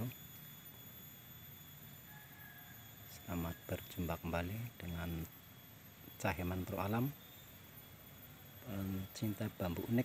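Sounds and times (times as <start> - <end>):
high-pitched insect drone: 0.0 - 10.0
low background hiss: 0.0 - 10.0.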